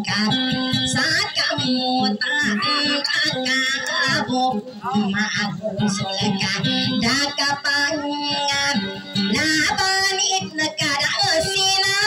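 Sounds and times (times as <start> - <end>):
high-pitched voice singing: 0.0 - 12.0
instrumental accompaniment: 0.0 - 12.0.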